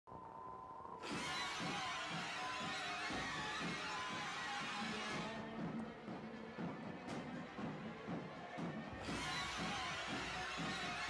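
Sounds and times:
theme music: 1.0 - 11.0.

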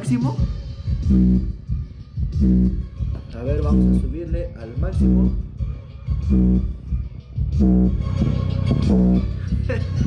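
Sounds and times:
loud bass notes: 0.0 - 10.0
music with bass guitar line: 0.0 - 10.0.

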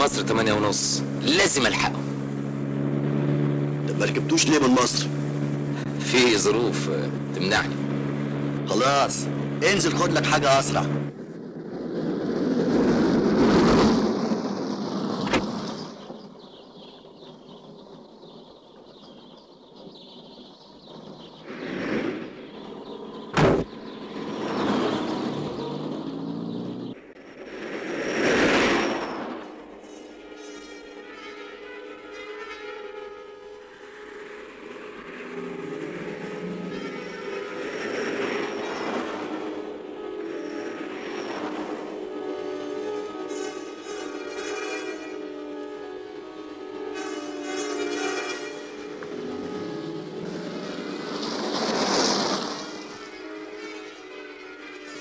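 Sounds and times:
vehicles passing: 0.0 - 55.0
sharp knock: 23.3 - 23.8.

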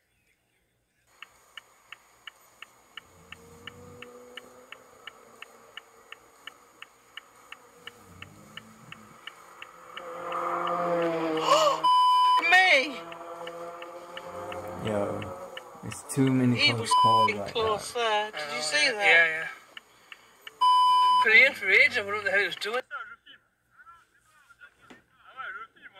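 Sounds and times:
turn signal ticking: 1.1 - 22.8
raised voices: 2.9 - 22.8
short steady beep: 11.8 - 12.5, 16.7 - 17.6, 20.6 - 21.6.

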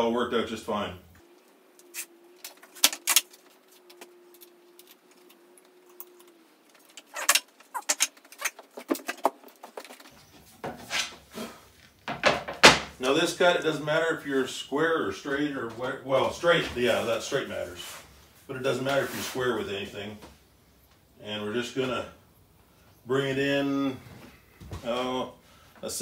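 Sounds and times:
faint steady hum: 0.0 - 8.8, 10.0 - 26.0.

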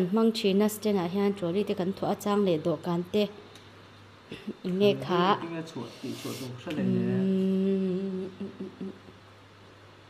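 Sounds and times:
person speaking: 4.5 - 9.0
person humming held note: 6.7 - 9.0.

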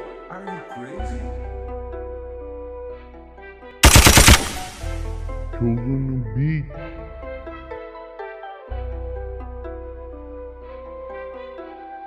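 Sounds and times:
machine-gun fire sound effect: 3.8 - 5.2.

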